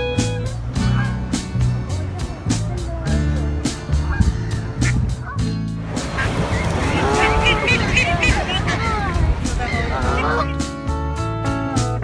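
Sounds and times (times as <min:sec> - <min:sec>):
strummed guitar music: 0:00.0 - 0:12.0
people talking: 0:01.9 - 0:03.5, 0:06.8 - 0:10.6
geese honking: 0:06.1 - 0:10.6.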